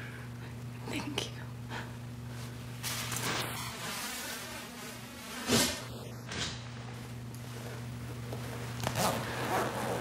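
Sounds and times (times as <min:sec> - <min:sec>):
low electrical hum with hiss: 0:00.0 - 0:10.0
nylon jacket rustling: 0:02.9 - 0:10.0.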